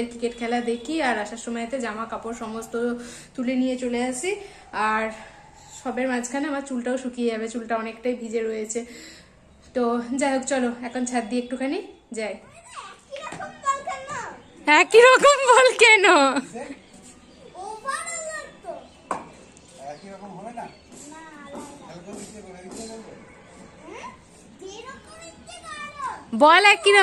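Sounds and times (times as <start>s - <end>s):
children calling out: 12.4s - 14.5s, 17.4s - 18.9s, 23.8s - 26.3s
woman speaking: 14.6s - 16.4s, 26.3s - 27.0s.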